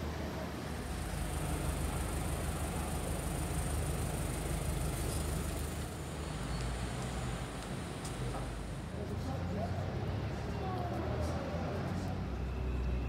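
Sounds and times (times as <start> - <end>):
traffic rumble and idling engines: 0.0 - 13.0.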